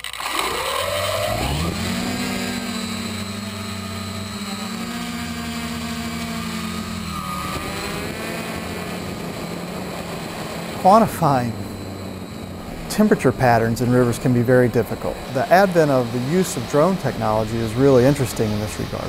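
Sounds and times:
drone propellers humming: 0.0s - 19.0s.

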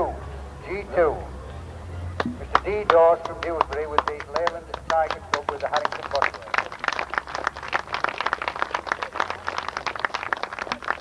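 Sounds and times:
audience applauding: 2.5s - 11.0s.

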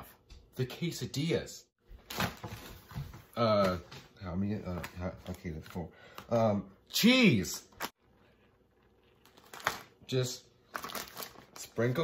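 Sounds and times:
plastic bag rustling: 10.6s - 12.0s.

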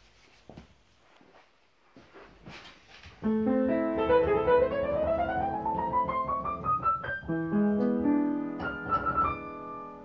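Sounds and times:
faint footsteps: 0.0s - 3.3s
shuffling and rustles: 0.0s - 3.3s.

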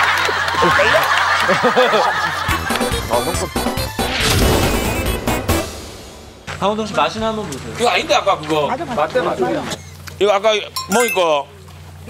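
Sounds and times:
men laughing: 0.0s - 3.7s
light background music: 2.5s - 8.3s.

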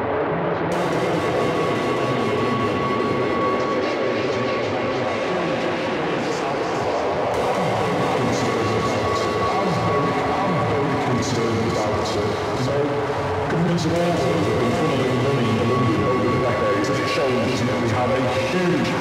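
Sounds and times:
rumbling drone texture: 0.1s - 19.0s
steady high tone: 7.4s - 19.0s.

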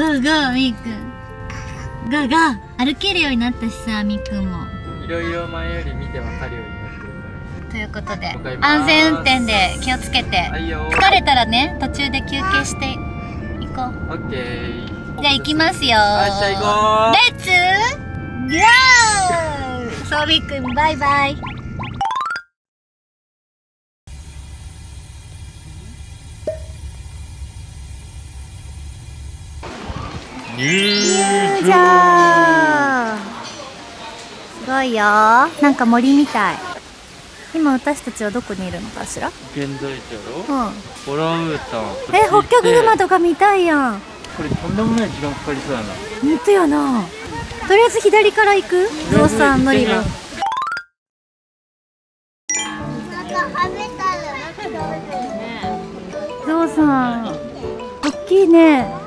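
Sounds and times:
car engine and road rumble: 0.0s - 21.8s, 24.1s - 30.8s
children chattering: 0.8s - 14.1s, 29.7s - 50.4s, 52.8s - 59.0s.

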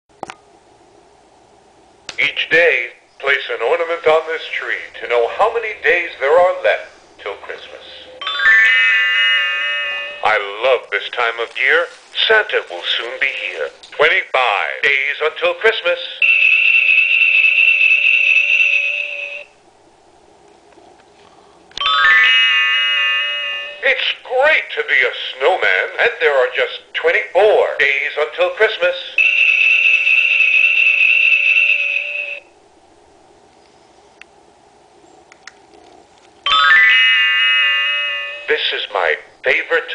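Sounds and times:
electronic chime rising notes: 8.2s - 10.3s, 21.8s - 23.8s, 36.5s - 38.5s.

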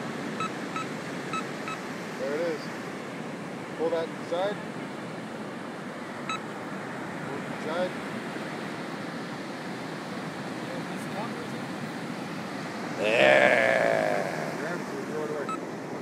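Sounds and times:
wind: 0.0s - 16.0s
surf: 12.9s - 14.9s
faint voice: 13.0s - 14.9s.

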